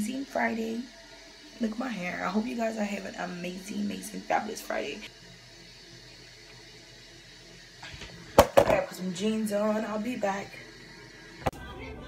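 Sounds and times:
running toilet hiss: 0.0 - 12.0.

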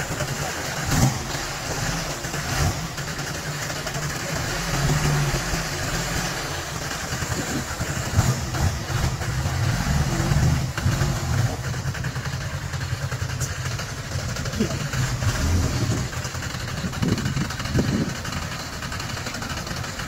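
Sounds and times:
vehicle engine low rumble: 0.0 - 20.0.

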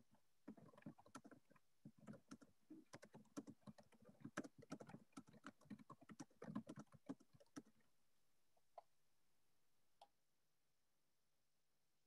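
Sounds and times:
typing on computer keyboard: 0.5 - 7.8.

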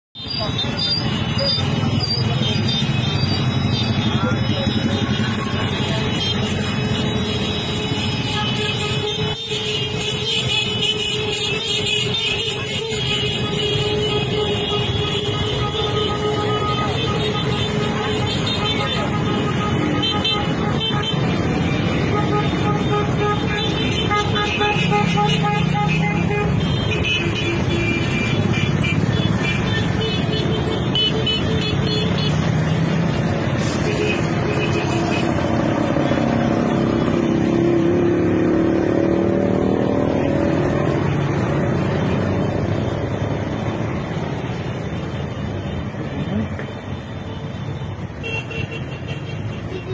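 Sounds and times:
road traffic passing: 0.0 - 49.9
vehicle horns honking: 0.2 - 37.5, 45.0 - 49.9
people's voices: 3.8 - 6.8.

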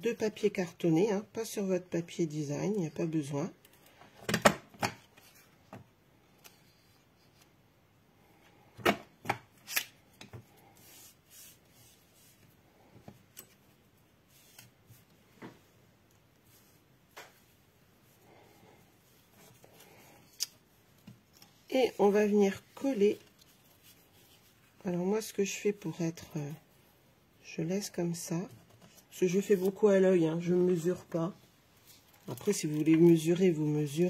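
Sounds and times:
paper rustling and rubbing: 10.6 - 12.6, 14.2 - 15.2, 21.4 - 24.8.

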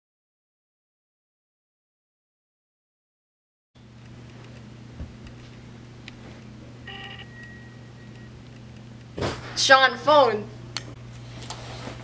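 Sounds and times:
steady low hum: 3.8 - 12.0
electronic phone beeps: 6.8 - 8.4
thin high tone: 6.8 - 8.4.

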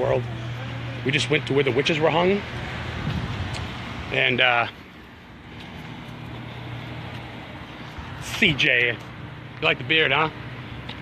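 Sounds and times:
car engine idling: 0.0 - 11.0
faint outdoor background noise: 0.0 - 11.0.

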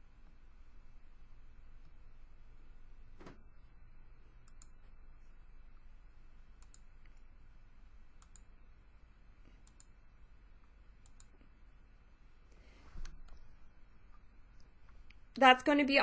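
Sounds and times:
low steady hum: 0.0 - 16.0
faint computer mouse clicks: 4.4 - 4.8, 6.6 - 7.3, 8.2 - 8.5, 9.6 - 10.0, 11.0 - 11.5.

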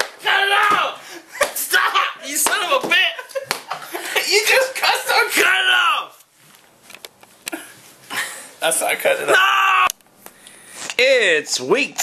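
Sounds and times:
padded bat smacking person: 0.0 - 1.7, 2.4 - 3.9
people shouting: 0.2 - 1.0, 9.3 - 9.9
people laughing: 3.0 - 4.8.

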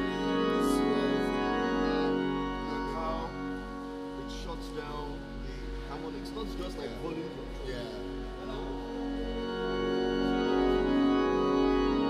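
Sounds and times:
organ holding chords: 0.0 - 12.0.

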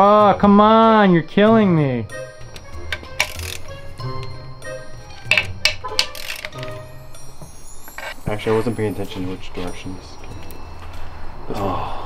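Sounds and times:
light tinkly background music: 0.0 - 12.0.

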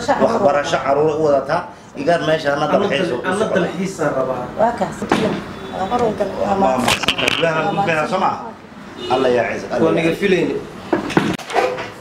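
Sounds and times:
voices talking: 2.7 - 10.2.

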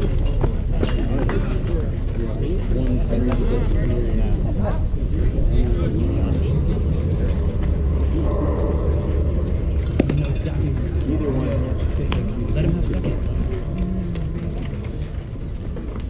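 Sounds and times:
spectator chatter: 0.0 - 16.0
wind rumble on microphone: 3.4 - 16.0.

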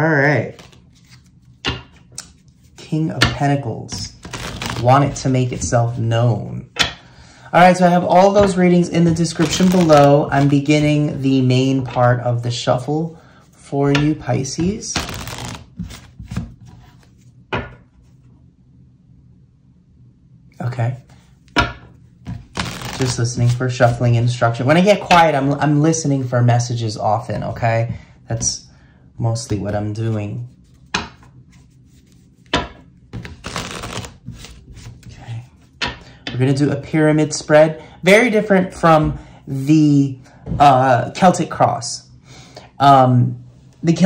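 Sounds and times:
cards being shuffled: 0.4 - 6.0, 8.2 - 10.8, 13.9 - 17.7, 22.2 - 24.0, 29.5 - 36.0.

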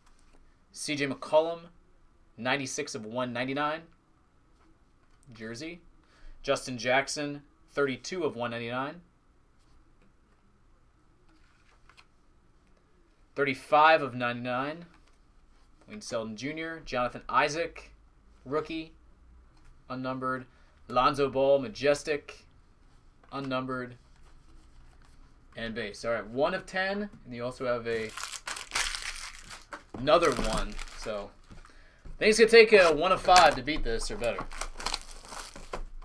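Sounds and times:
foil and plastic packaging crinkling: 27.9 - 31.8, 32.6 - 36.0.

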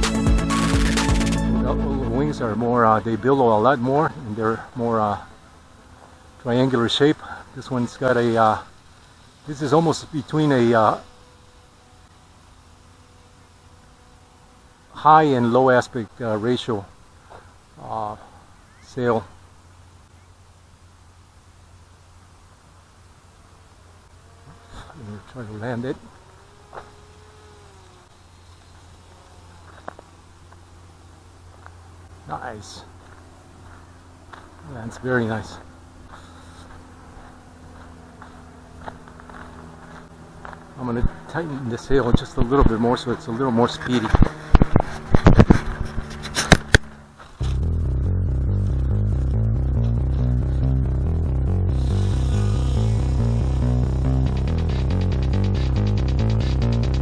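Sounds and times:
electronic music with steady beat: 0.0 - 2.6, 47.4 - 57.0
model aircraft motor buzzing: 2.9 - 17.4, 23.5 - 32.3, 32.9 - 47.8, 51.1 - 57.0.

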